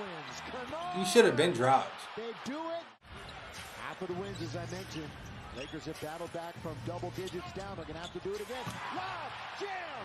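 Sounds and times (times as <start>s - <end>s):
arena crowd noise: 0.0s - 10.0s
man talking: 0.6s - 2.8s.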